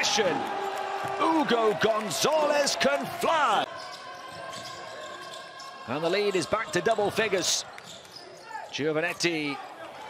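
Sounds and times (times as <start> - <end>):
arena hall noise: 0.0 - 10.0.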